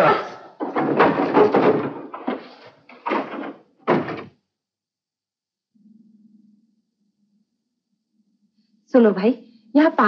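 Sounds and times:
wooden door rattling: 0:00.0 - 0:04.4.

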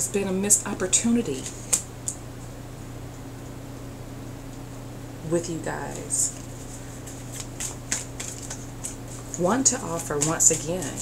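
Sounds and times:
low steady hum: 0:00.0 - 0:11.0
cards being shuffled: 0:05.9 - 0:11.0.

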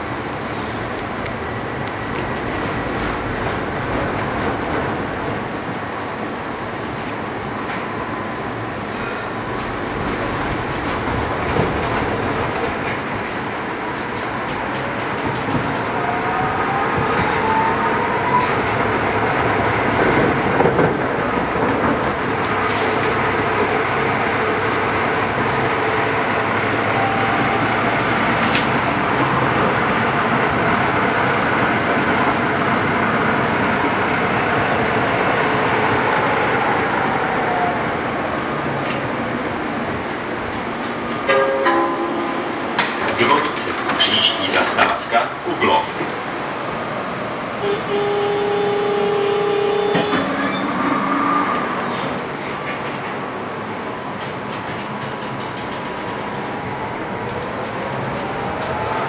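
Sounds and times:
tram motor whine: 0:00.0 - 0:43.9, 0:46.2 - 0:54.4
tram wheels rumbling on rails: 0:00.0 - 0:59.0.

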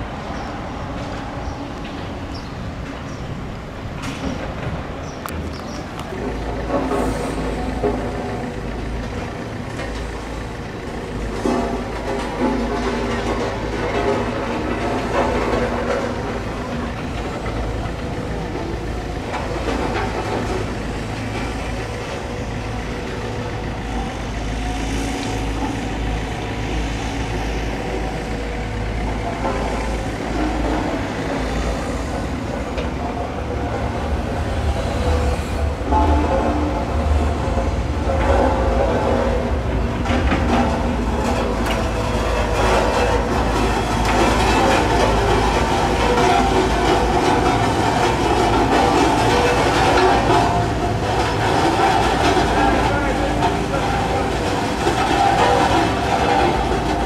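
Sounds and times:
construction machinery: 0:00.0 - 0:57.0
engine hums: 0:00.0 - 0:57.0
traffic rumble: 0:00.0 - 0:57.0.

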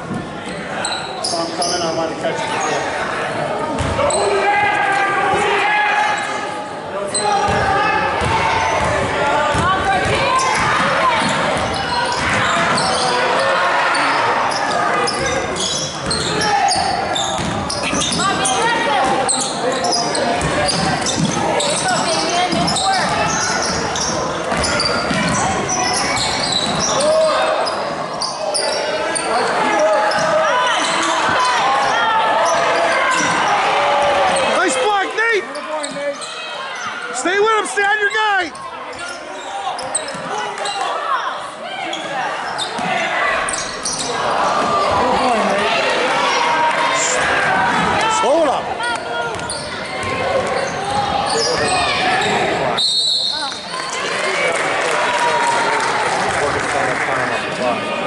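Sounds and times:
sneakers squeaking: 0:00.0 - 0:04.4, 0:07.1 - 0:37.2, 0:37.9 - 0:45.9, 0:46.9 - 0:54.2.

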